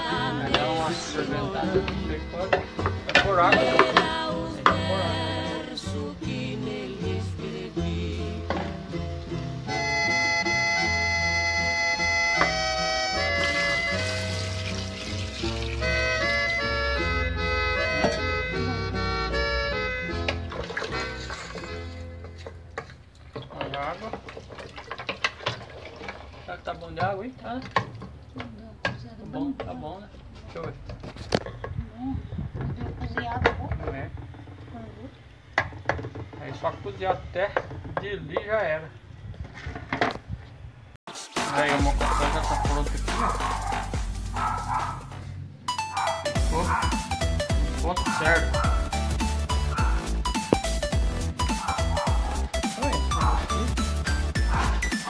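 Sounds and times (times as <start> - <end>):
background music: 0.0 - 22.8, 41.1 - 55.0
liquid sloshing: 13.4 - 16.0, 20.3 - 27.0.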